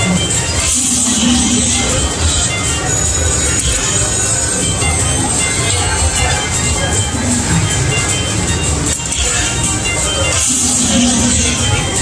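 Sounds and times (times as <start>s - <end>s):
slot machine music: 0.0s - 12.0s
slot machine reels spinning: 0.0s - 12.0s.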